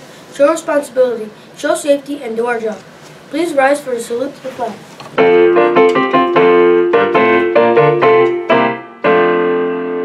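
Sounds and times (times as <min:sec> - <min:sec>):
piano chords: 0:05.1 - 0:10.0.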